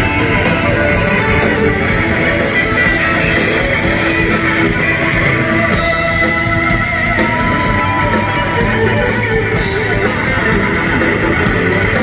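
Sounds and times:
blues-rock band playing: 0.0s - 12.0s
wavering electric guitar notes: 0.0s - 12.0s.

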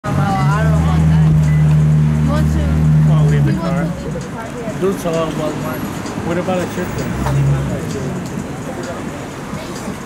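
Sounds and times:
vehicle engine running: 0.0s - 9.5s
voices talking: 0.0s - 10.0s.

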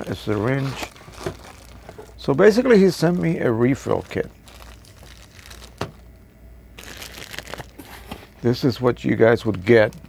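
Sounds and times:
plastic crinkling: 0.0s - 6.2s, 6.8s - 8.5s.

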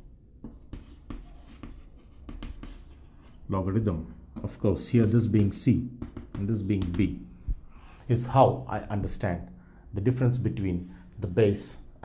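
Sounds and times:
chalk writing on chalkboard: 0.4s - 3.5s, 5.0s - 8.0s.

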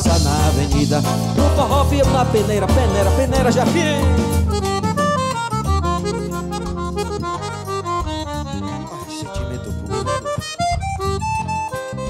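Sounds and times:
drums: 0.0s - 8.5s
accordion melody: 0.0s - 12.0s
bass: 0.0s - 12.0s.

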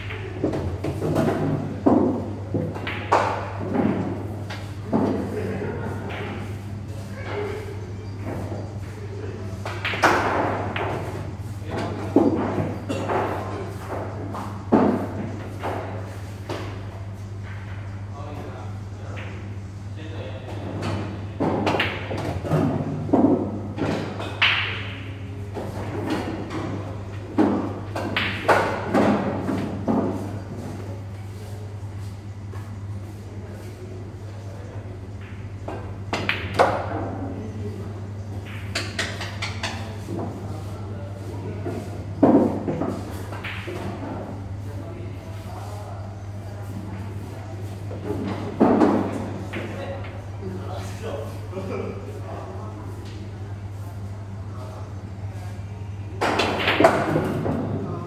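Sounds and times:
voices in background: 2.9s - 58.0s
pool balls clicking: 38.3s - 40.4s.

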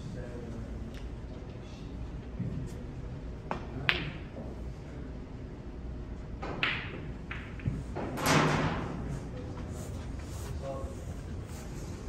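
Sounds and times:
cue tip striking ball: 6.4s - 7.9s.

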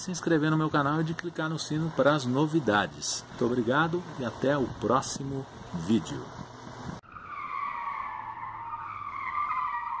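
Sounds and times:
car tyre screech: 7.0s - 10.0s.

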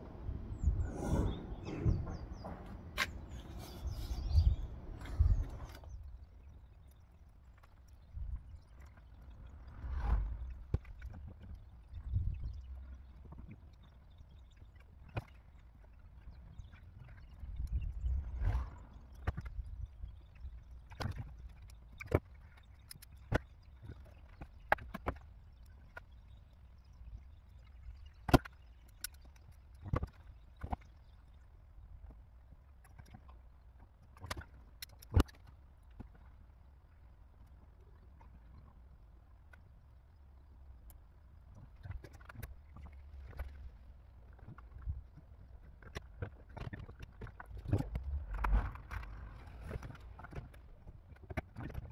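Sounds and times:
small clicks and taps: 27.6s - 31.0s, 32.8s - 36.3s.

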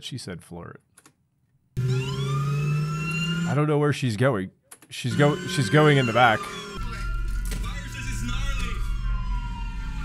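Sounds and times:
ambulance siren wailing: 1.8s - 3.6s, 5.1s - 10.0s.

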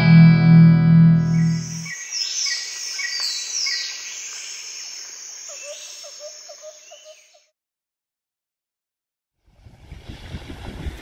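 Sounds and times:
birds chirping and calling: 1.2s - 7.5s.

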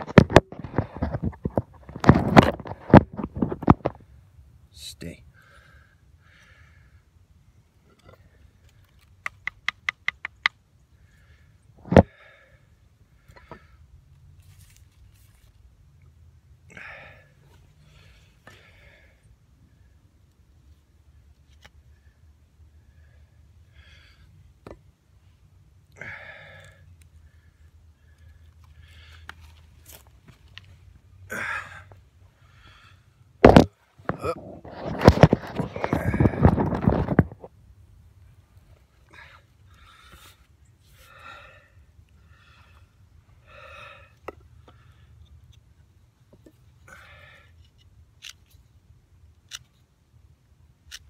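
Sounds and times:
person breathing hard: 5.3s - 7.2s, 11.0s - 13.9s, 16.7s - 19.4s, 22.0s - 24.4s, 26.0s - 29.6s, 31.3s - 33.3s, 39.0s - 45.3s, 46.8s - 47.6s.

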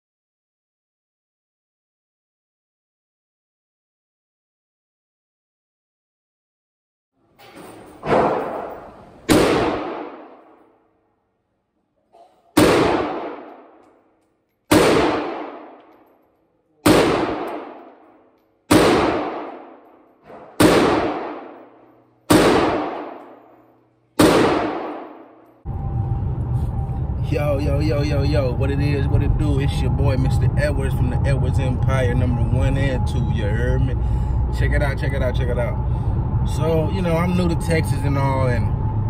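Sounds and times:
pistol gunshots with echo: 8.0s - 10.7s, 12.5s - 13.9s, 14.7s - 16.1s, 16.8s - 23.6s, 24.2s - 25.5s.

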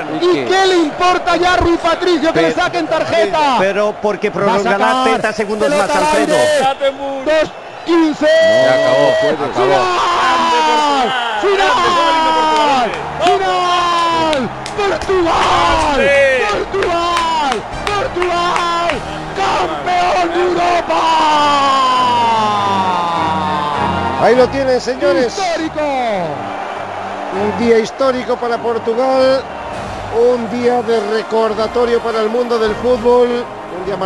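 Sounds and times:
man shouting long held shout: 8.1s - 14.5s, 19.4s - 24.6s.

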